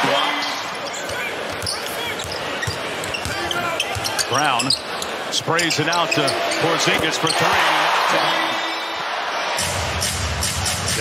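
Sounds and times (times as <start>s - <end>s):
murmur of arena crowd: 0.0s - 11.0s
sneaker squeaks: 0.8s - 7.7s.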